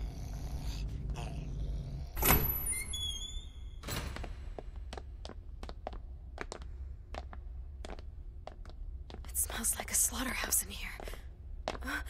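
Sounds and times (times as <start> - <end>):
breathy whisper-like voice: 0.0 - 2.2
low room hum: 0.0 - 12.0.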